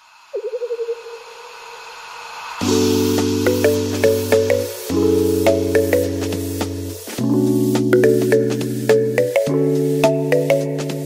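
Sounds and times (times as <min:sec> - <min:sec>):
synthesized hissy swell: 0:00.0 - 0:08.4.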